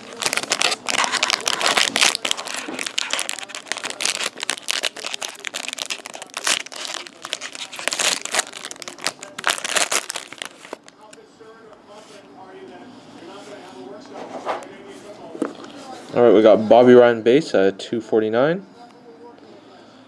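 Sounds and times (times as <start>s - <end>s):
foil wrapper tearing and crinkling: 0.0s - 10.9s.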